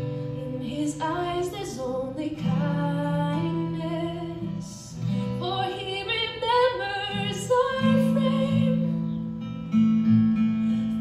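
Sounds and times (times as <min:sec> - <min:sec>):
woman singing: 0:00.0 - 0:09.2
acoustic guitar: 0:00.0 - 0:11.0.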